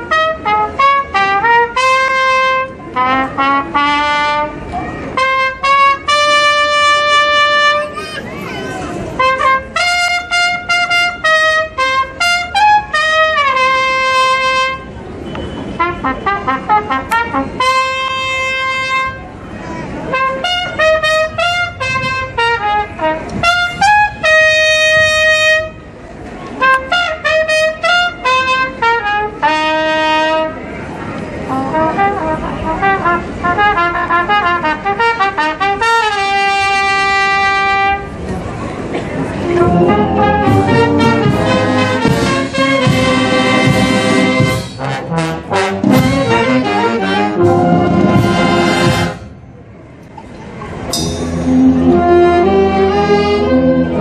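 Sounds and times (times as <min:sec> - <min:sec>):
trumpets playing melody: 0:00.0 - 0:08.4, 0:09.0 - 0:14.9, 0:15.7 - 0:19.3, 0:20.1 - 0:25.9, 0:26.6 - 0:30.6, 0:31.5 - 0:38.2, 0:39.3 - 0:49.4, 0:50.9 - 0:54.0
brass band playing: 0:00.0 - 0:14.9, 0:15.7 - 0:19.4, 0:20.0 - 0:26.0, 0:26.6 - 0:30.6, 0:31.4 - 0:38.3, 0:38.9 - 0:49.4, 0:50.9 - 0:54.0.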